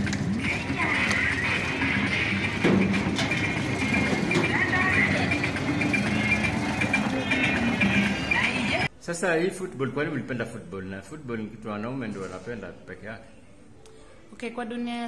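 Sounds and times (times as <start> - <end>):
voices: 0.4 - 8.9.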